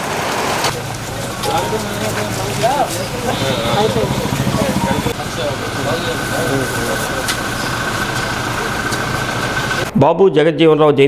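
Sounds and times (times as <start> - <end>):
steady rumbling: 0.7 - 9.9
thin steady whine: 0.7 - 9.9
people talking indistinctly: 0.7 - 10.7.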